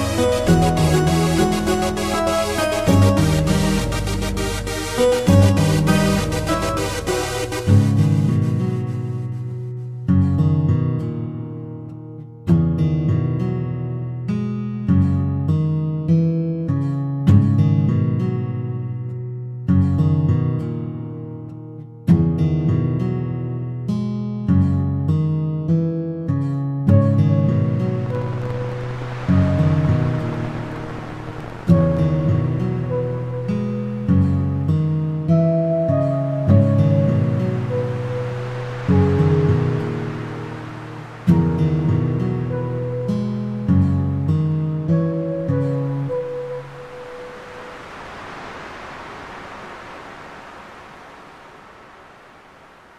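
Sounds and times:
acoustic guitar music: 0:00.0 - 0:47.9
ocean waves: 0:27.9 - 0:34.6, 0:37.2 - 0:43.7, 0:46.1 - 0:52.9.

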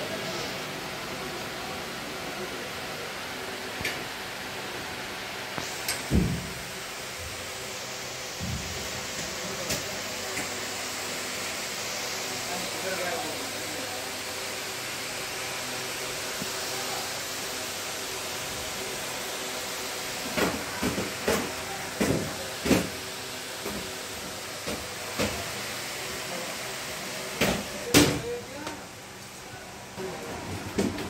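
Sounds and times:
air conditioning hissing: 0:00.0 - 0:31.0.

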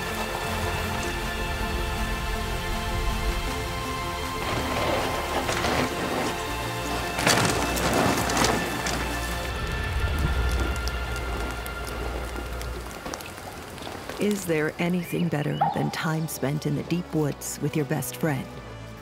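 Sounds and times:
background music with sustained tones: 0:00.0 - 0:19.0.

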